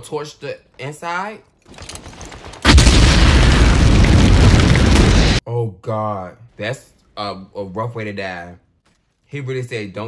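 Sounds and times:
flamethrower fire rushing: 2.6 - 5.4.

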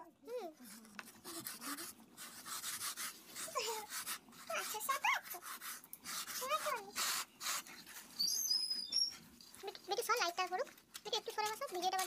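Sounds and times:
hands rolling dough on a mat: 0.6 - 8.4
wavering whimpering calls: 8.1 - 9.3.

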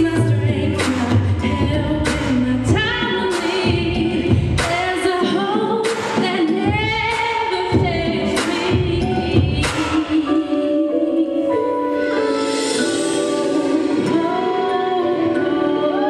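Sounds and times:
backing track with beat and bass: 0.0 - 16.0
woman singing r and b song: 0.0 - 16.0.

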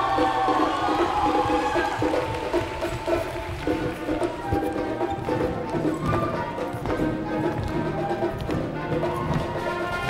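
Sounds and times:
wind band playing: 0.0 - 10.0.

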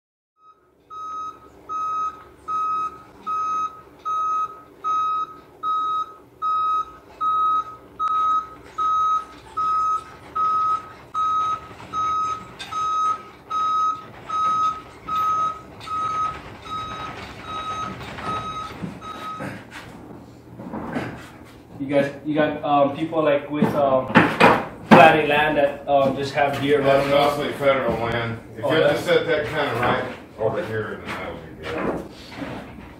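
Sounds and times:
reversing alarm beeping: 0.4 - 19.6.

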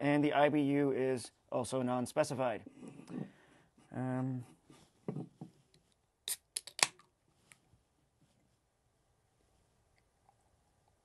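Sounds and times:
can pull tab opening: 6.3 - 7.0.

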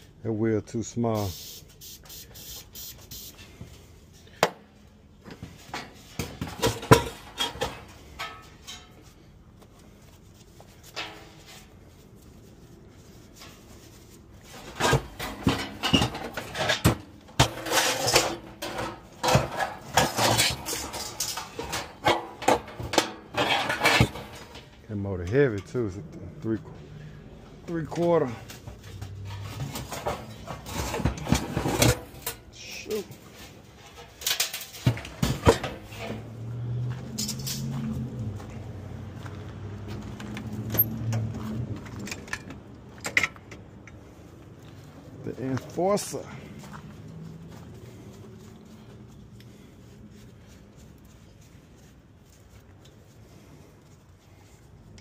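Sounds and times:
metallic clanks and scraping: 3.4 - 26.1, 26.7 - 38.8, 39.9 - 50.0.

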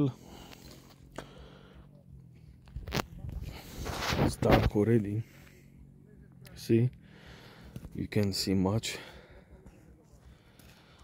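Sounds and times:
shuffling and rustling: 2.6 - 4.8.

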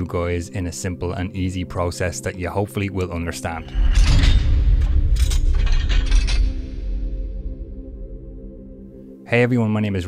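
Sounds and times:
mechanical ratcheting and gear clanks: 3.6 - 6.9.

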